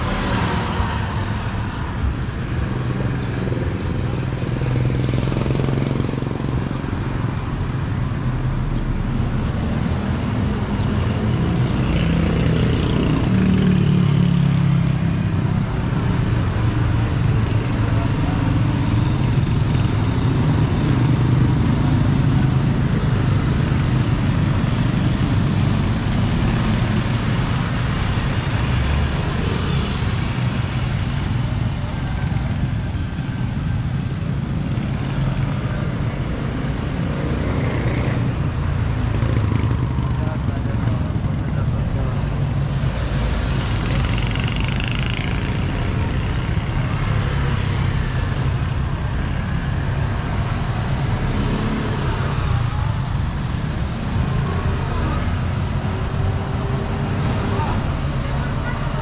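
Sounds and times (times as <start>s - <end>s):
motorcycle engines passing: 0.0s - 59.0s
road rumble: 0.0s - 59.0s.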